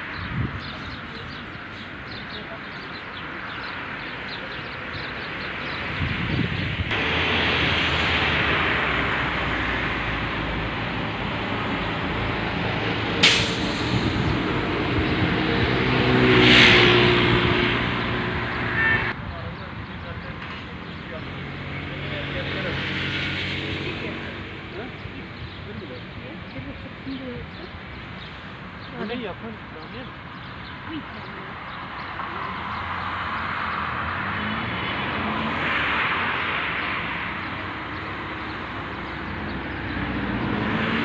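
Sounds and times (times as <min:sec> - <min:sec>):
heavy vehicle passing: 0:00.0 - 0:41.0
road traffic passing: 0:00.0 - 0:41.0
short sharp hiss: 0:13.2 - 0:14.1.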